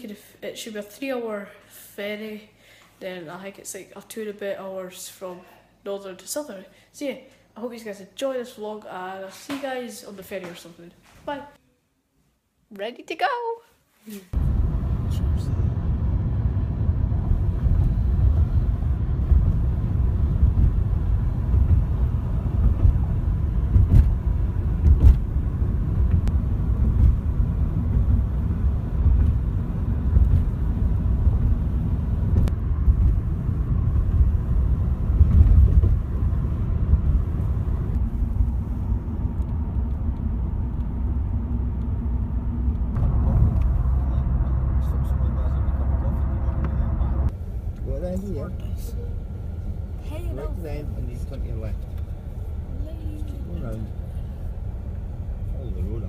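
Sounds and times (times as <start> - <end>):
car road and engine rumble: 14.3 - 56.0.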